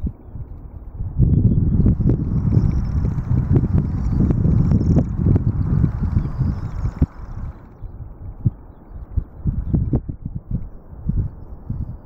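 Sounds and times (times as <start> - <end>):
distant jet engines rumbling: 1.2 - 10.5
low thumps: 1.5 - 7.8.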